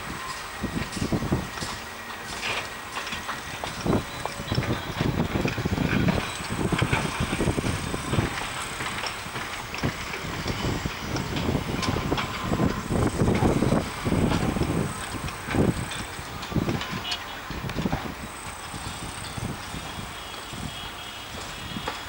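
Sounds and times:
heavy construction machinery rumbling: 0.0 - 22.0.

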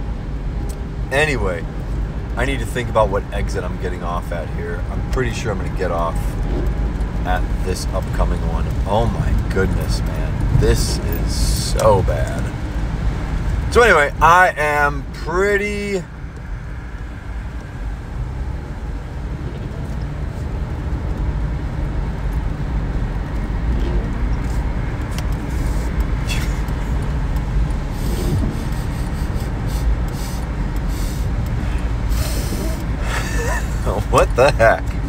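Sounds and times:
car engine and tyre rumble: 0.0 - 35.0.

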